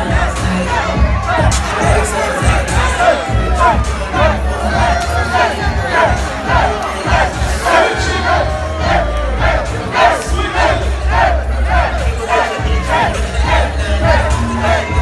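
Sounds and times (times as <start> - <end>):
crowd shouting and cheering: 0.0 - 15.0
dance music with heavy bass: 0.0 - 15.0.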